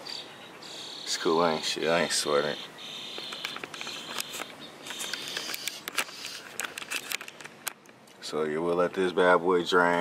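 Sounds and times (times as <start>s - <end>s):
high insect chirring: 2.2s - 6.8s.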